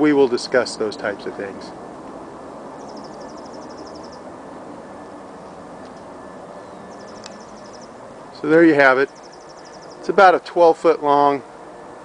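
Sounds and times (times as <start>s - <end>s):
outdoor background noise: 0.0s - 12.0s
high chirping trill: 2.7s - 4.3s, 6.4s - 10.2s.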